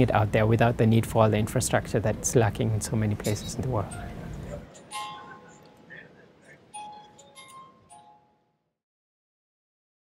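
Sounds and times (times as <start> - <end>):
music box notes: 3.3 - 8.6.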